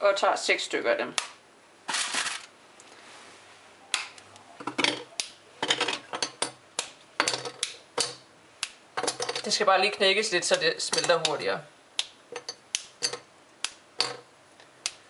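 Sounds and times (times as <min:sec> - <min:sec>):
rustle: 0:01.0 - 0:10.8
chocolate snapping: 0:03.9 - 0:04.2, 0:05.2 - 0:05.4, 0:06.8 - 0:07.0, 0:07.6 - 0:08.8, 0:12.0 - 0:13.0, 0:14.8 - 0:15.0.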